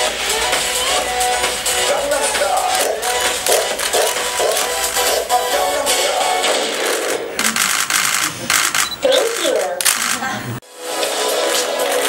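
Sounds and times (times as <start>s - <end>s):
camera shutters clicking: 2.7s - 5.2s, 6.9s - 10.3s.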